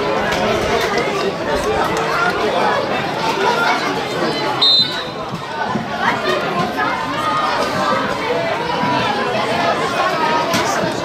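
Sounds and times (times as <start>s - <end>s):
chatter of several voices: 0.0s - 11.0s.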